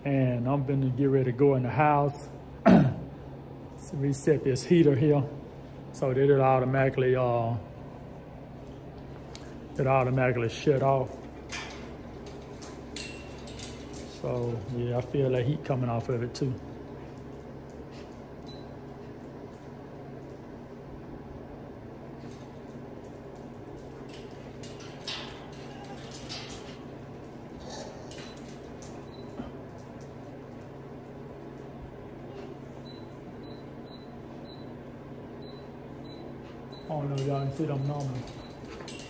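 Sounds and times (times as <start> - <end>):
electric heater humming: 0.0 - 39.0.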